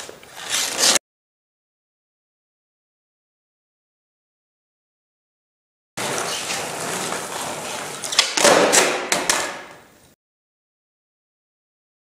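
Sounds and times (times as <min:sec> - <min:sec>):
skateboard wheels rolling: 0:00.0 - 0:01.0, 0:06.0 - 0:09.9
skateboard hitting ground: 0:06.0 - 0:09.9.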